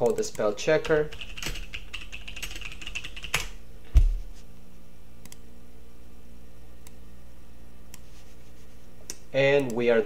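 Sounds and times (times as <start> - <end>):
heavier keyboard thump: 3.9 - 4.2.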